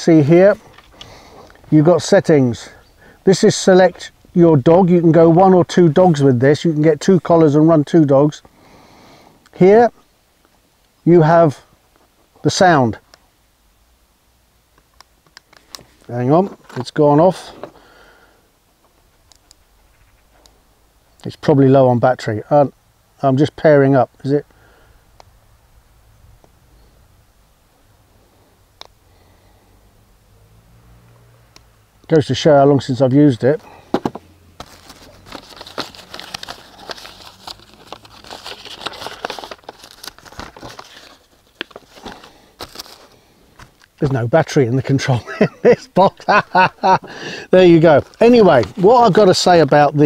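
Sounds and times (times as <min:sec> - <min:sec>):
fabric case rustling: 0:33.9 - 0:43.8.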